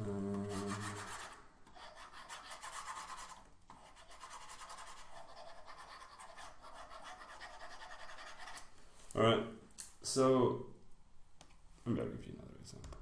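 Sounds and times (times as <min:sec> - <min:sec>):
stylus rasping on drawing tablet: 0:00.4 - 0:08.7.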